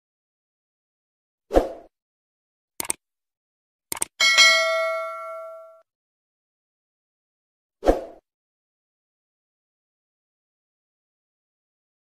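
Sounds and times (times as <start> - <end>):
quick clicks: 2.8 - 3.0, 3.9 - 4.2
notification bell ding: 4.2 - 5.8.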